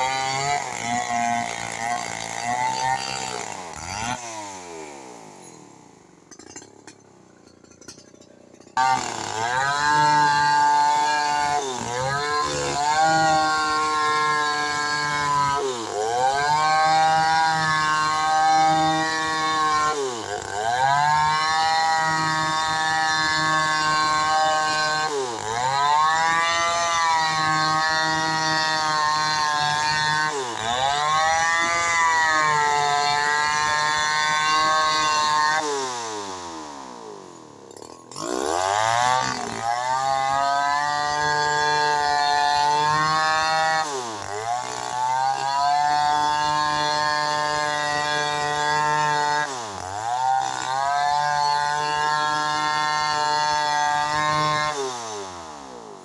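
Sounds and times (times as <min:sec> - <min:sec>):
chainsaw cutting log: 0:00.0 - 0:56.0.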